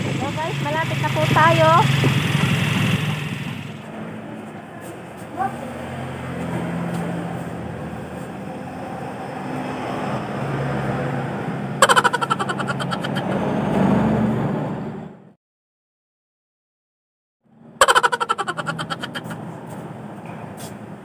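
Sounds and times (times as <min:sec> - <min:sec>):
motor traffic hum: 0:00.0 - 0:15.3, 0:17.5 - 0:21.0.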